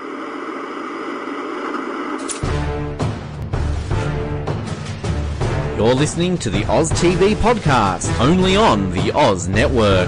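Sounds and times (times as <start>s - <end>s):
television static hiss: 0.0s - 2.4s.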